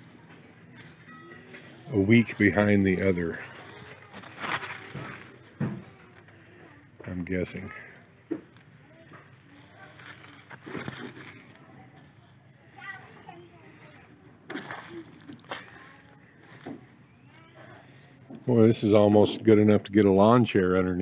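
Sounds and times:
faint distant voices: 0.0s - 21.0s
footsteps through corn plants: 0.8s - 5.9s, 9.2s - 11.6s, 14.5s - 17.0s
corn leaves rustling: 2.1s - 5.6s, 9.6s - 11.6s.

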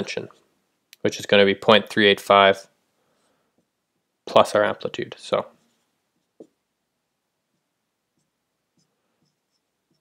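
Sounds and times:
marker writing on whiteboard: 7.4s - 10.0s.

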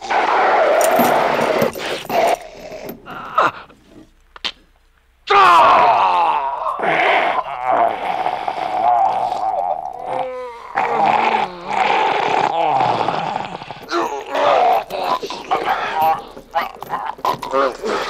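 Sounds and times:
zombie snarling and growling: 0.0s - 3.7s, 5.3s - 18.0s
man groaning and crying: 0.8s - 3.8s, 5.3s - 18.0s.

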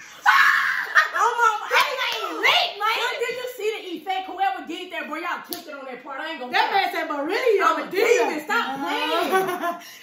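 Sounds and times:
person screaming excitedly: 0.0s - 1.2s
laughing and excited voices: 0.2s - 3.6s, 7.6s - 10.0s.

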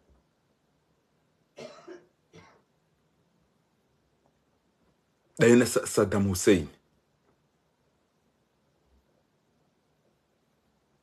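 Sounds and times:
man coughing: 1.6s - 2.6s.

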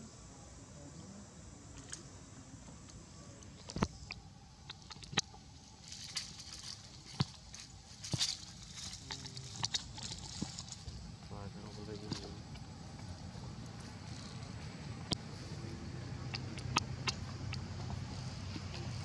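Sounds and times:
dry leaves and twigs crackling: 4.7s - 15.3s.

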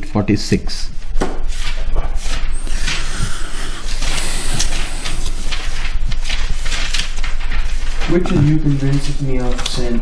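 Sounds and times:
steady low hum: 2.2s - 8.0s.

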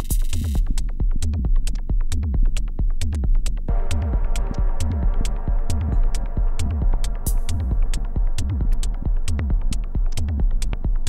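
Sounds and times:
hi-hat-like ticks: 0.0s - 11.0s
held synth chord: 3.7s - 10.2s
pulsing synth bass: 3.7s - 11.0s.

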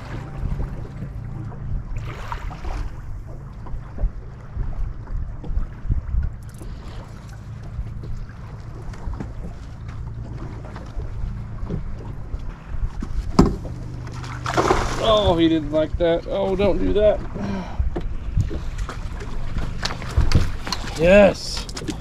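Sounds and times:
wind noise on microphone: 0.0s - 7.0s, 17.7s - 21.0s
boat motor running: 0.0s - 22.0s.

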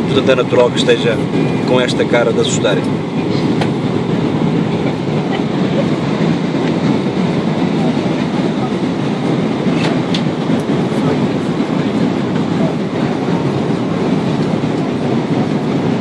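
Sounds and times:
airliner cabin engine roar: 0.0s - 16.0s.

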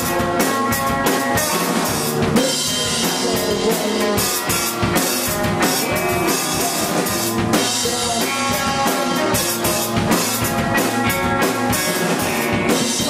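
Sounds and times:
drum and cymbal hits: 0.0s - 13.0s
electric guitar: 0.0s - 13.0s
live rock band playing: 0.0s - 13.0s.

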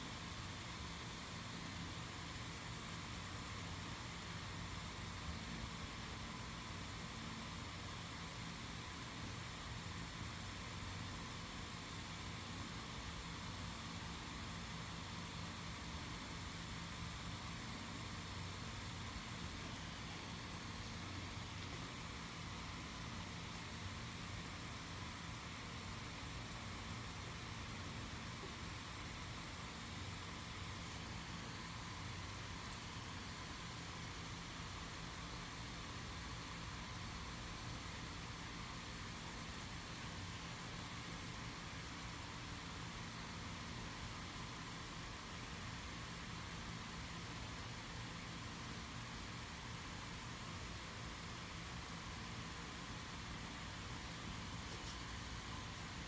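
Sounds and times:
faint low hum: 0.0s - 56.0s
steady hiss: 0.0s - 56.0s.

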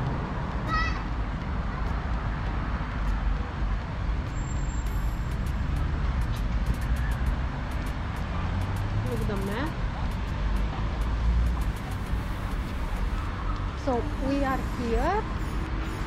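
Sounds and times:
distant road noise: 0.0s - 16.0s.

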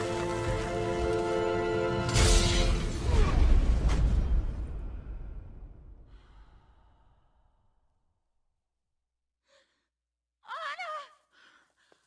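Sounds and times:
film soundtrack: 0.0s - 8.7s.

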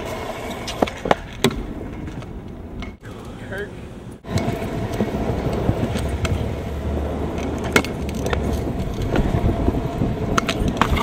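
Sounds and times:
small wheels rolling on concrete: 0.0s - 11.0s.

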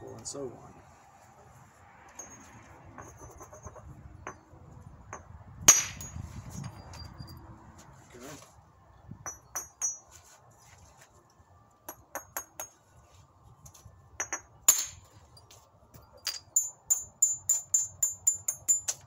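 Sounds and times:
stone clicks and clinks: 14.2s - 19.0s.

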